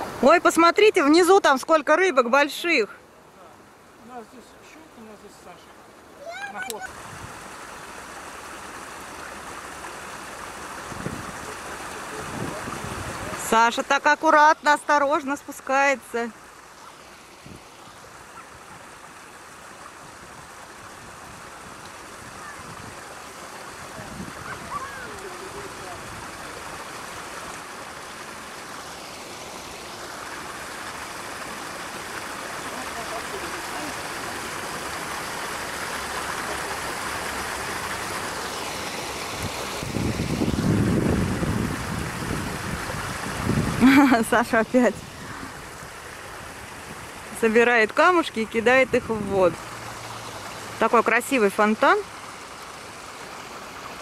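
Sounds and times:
water splashing down fountain: 6.2 - 54.0.

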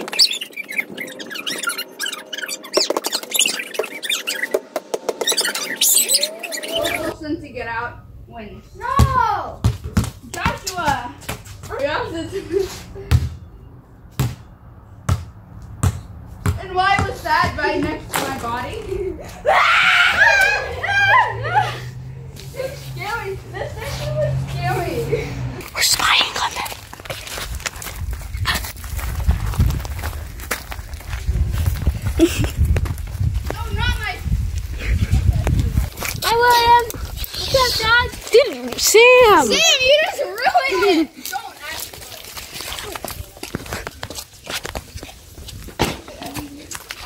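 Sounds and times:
beach ball bouncing on concrete: 9.0 - 11.8, 13.1 - 13.4, 14.1 - 18.7, 45.7 - 46.9
footsteps crunching on dry dirt: 26.0 - 36.3.

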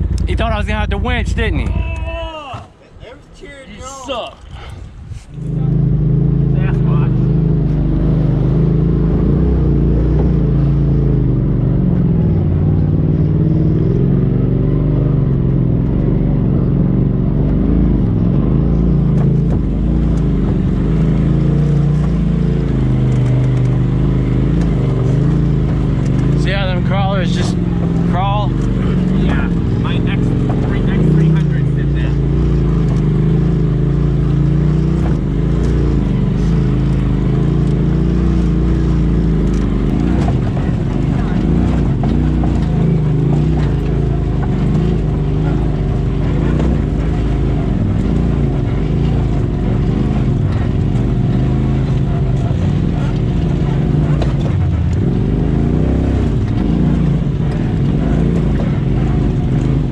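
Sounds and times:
utility vehicle engine running: 0.0 - 2.4, 3.9 - 59.9.

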